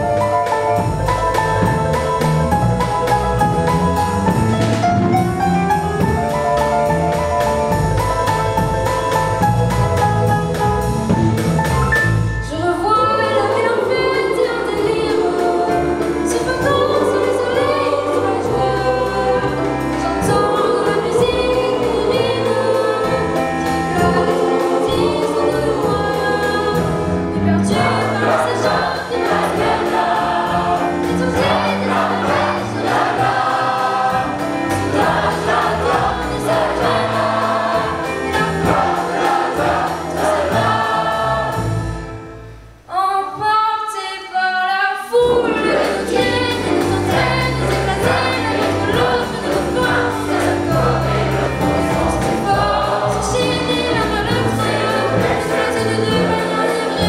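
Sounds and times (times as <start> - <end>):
steady drum beat: 0.0 - 12.6, 13.5 - 42.1, 45.2 - 57.0
children's choir singing: 12.7 - 42.0, 44.2 - 57.0.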